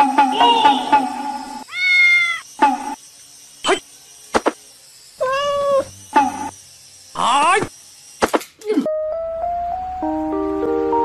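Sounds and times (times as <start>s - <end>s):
cat meowing: 1.6s - 2.4s, 5.2s - 5.9s.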